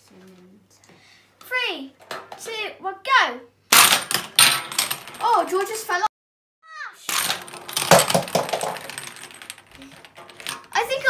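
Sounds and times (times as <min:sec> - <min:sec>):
plastic capsules clattering down track: 0:03.7 - 0:05.9, 0:07.1 - 0:11.0.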